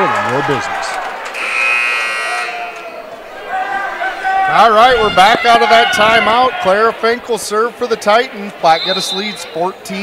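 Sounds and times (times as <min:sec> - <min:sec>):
scoreboard buzzer: 0:01.3 - 0:02.8.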